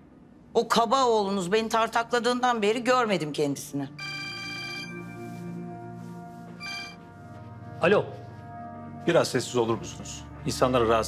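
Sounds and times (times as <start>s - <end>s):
quiet music underscore: 0.0s - 11.0s
phone ringtone chiming: 4.0s - 5.3s, 6.6s - 7.0s.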